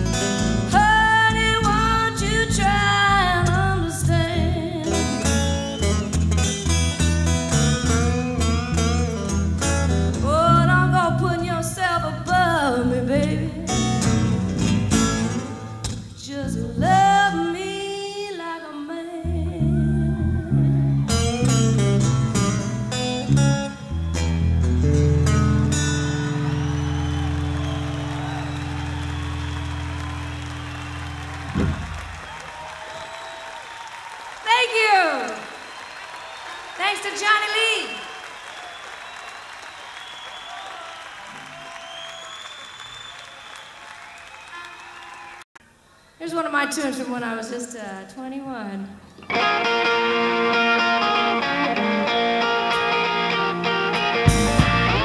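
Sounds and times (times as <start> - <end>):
lead guitar gliding: 0.0 - 16.0, 19.3 - 32.2, 49.2 - 55.0
live blues band: 0.0 - 17.9, 19.2 - 32.4, 49.1 - 55.0
audience applauding: 25.9 - 45.5.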